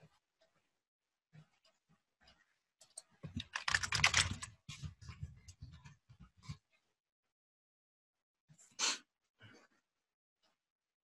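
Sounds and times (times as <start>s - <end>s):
computer keyboard typing: 3.3s - 4.6s.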